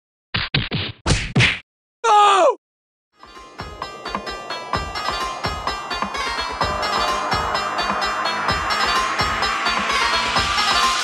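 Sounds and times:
pitched sound sliding down: 3.4 - 11.0.

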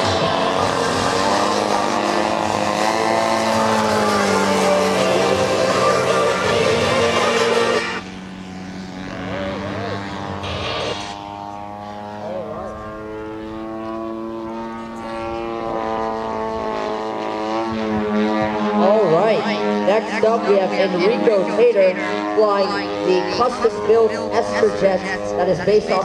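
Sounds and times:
model airplane engine drone: 0.0 - 26.0.

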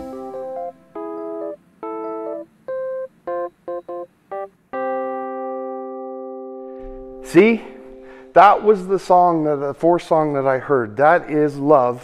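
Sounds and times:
keyboard playing chords: 0.0 - 10.0.

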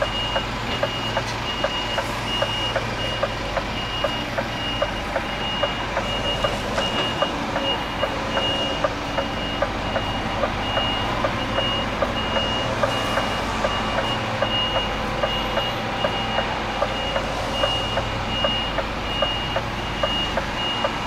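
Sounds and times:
diesel engine running: 0.0 - 21.0
reversing alarm beeping: 0.0 - 21.0.

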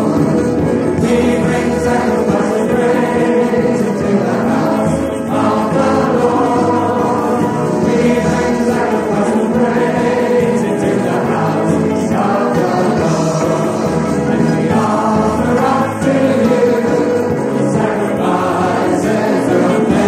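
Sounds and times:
choir singing gospel: 0.0 - 20.0.

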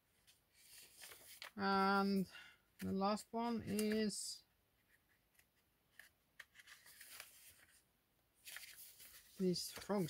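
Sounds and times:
paper pages rustling: 0.1 - 1.6, 3.6 - 4.1, 4.8 - 7.8, 8.4 - 10.0.

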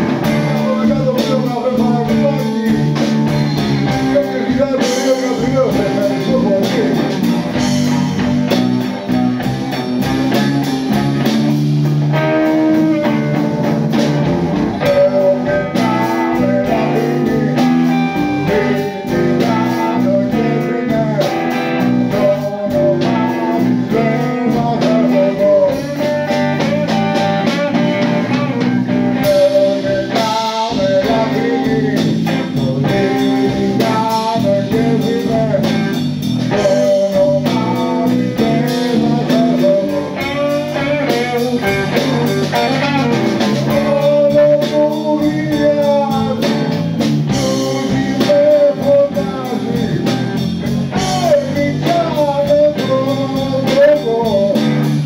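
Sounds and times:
bass guitar: 0.0 - 55.0
drum kit: 0.0 - 55.0
electric guitar playing: 0.0 - 55.0.

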